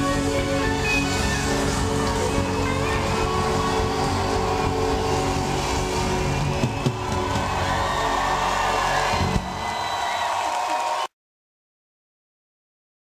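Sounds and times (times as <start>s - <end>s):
live band playing: 0.0s - 10.8s
crowd cheering: 1.0s - 11.2s.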